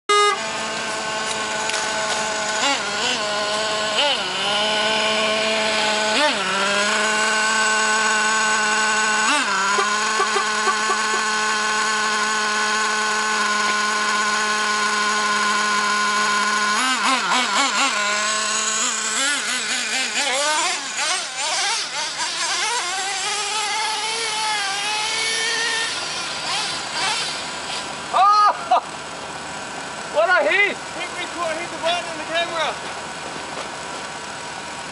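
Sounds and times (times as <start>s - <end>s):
rc truck engine buzzing: 0.1s - 34.9s.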